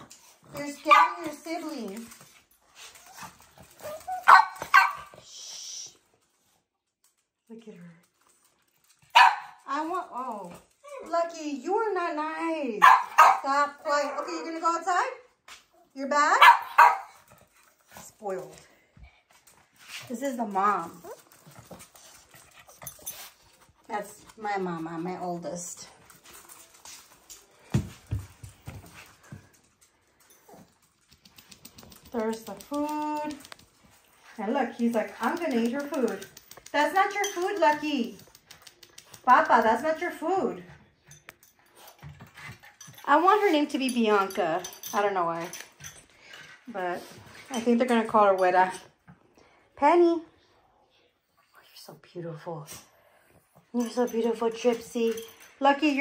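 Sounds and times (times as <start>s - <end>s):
small dog barking: 4.2s - 5.1s, 9.1s - 9.6s, 12.8s - 13.4s, 16.4s - 17.2s.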